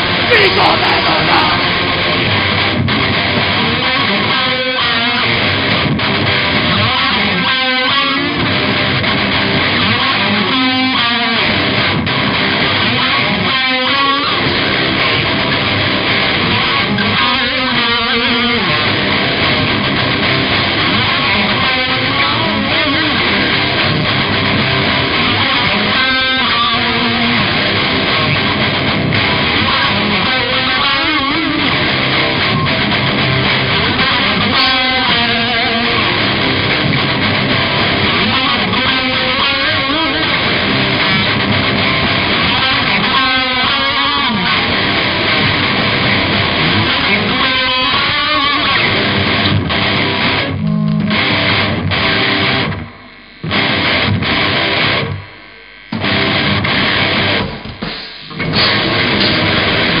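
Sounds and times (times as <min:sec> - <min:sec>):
heavy metal band playing: 0:00.0 - 0:55.2, 0:56.0 - 1:00.0.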